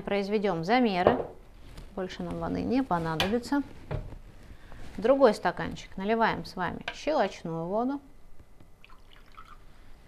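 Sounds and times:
water dripping: 8.8s - 9.6s
water pouring into glass: 8.8s - 9.8s.

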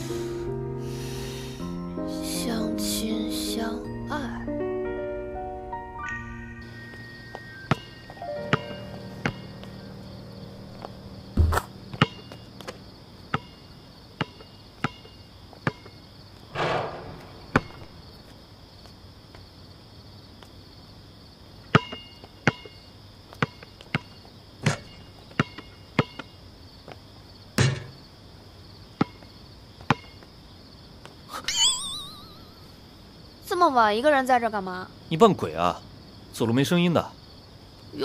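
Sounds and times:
crickets chirping: 0.0s - 38.0s
basketball bouncing on concrete: 7.3s - 7.9s, 8.5s - 9.8s, 10.8s - 13.6s, 14.2s - 15.9s, 16.6s - 18.1s, 21.7s - 26.3s, 29.0s - 30.2s
ball swishing through net: 11.4s - 12.3s
basketball striking hoop: 11.4s - 12.4s, 16.5s - 18.1s, 27.6s - 28.0s
sharp knocks: 11.4s - 12.4s, 16.5s - 18.3s.

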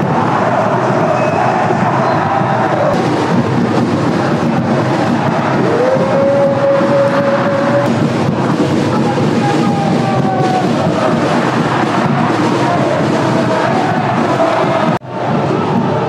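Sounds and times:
stadium crowd chanting and singing: 0.0s - 16.0s.

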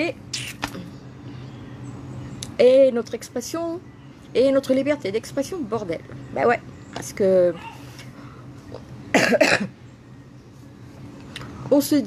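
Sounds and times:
woman coughing: 9.1s - 9.8s.

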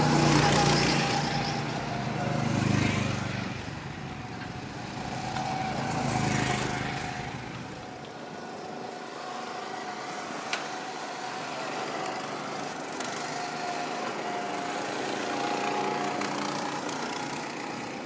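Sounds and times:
go-kart engines running: 0.0s - 18.0s.

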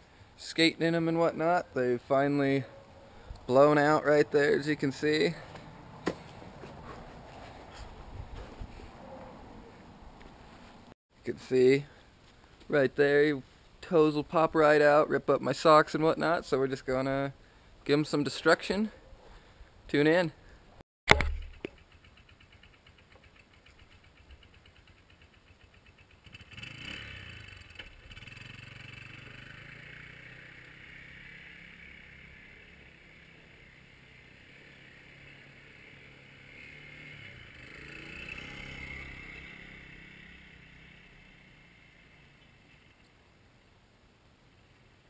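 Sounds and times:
quad bike engine revving: 23.6s - 43.0s.

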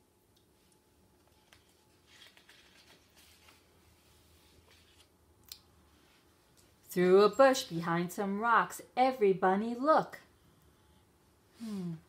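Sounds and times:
paper page turning: 1.2s - 3.8s, 4.4s - 5.1s.

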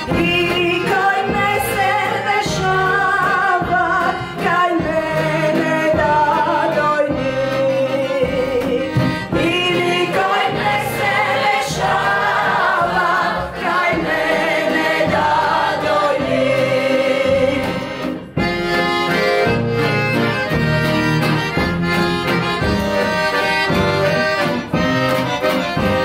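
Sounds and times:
mixed choir singing: 9.7s - 17.9s.

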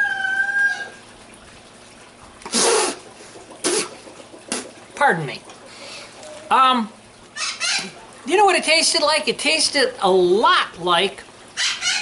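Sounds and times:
chicken call: 0.0s - 1.0s, 11.6s - 12.0s
man spitting: 2.4s - 4.8s.

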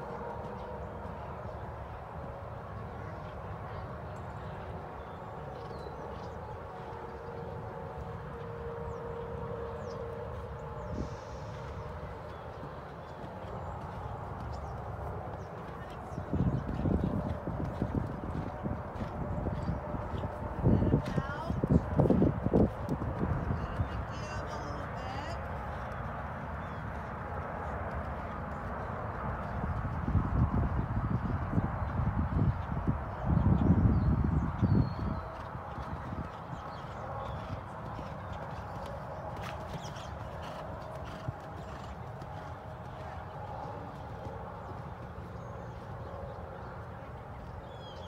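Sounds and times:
horse hoofbeats on sand: 11.4s - 48.0s.

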